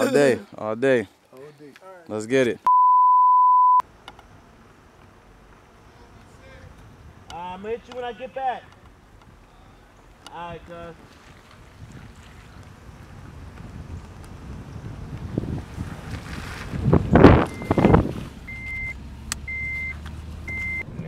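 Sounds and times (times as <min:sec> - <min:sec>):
high electronic beep: 0:02.7 - 0:03.8, 0:17.5 - 0:18.9, 0:20.5 - 0:20.8.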